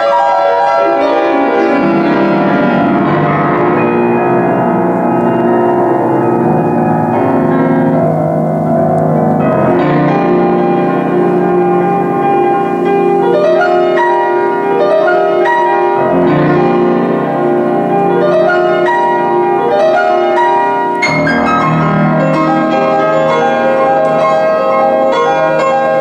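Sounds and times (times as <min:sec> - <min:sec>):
grand piano chords: 0:00.0 - 0:26.0.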